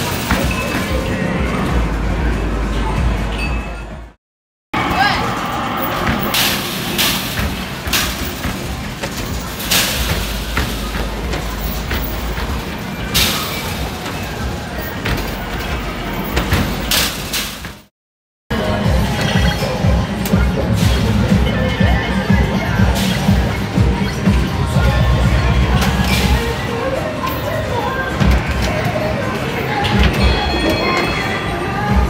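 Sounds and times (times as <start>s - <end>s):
basketballs thudding on hoops: 5.8s - 17.9s.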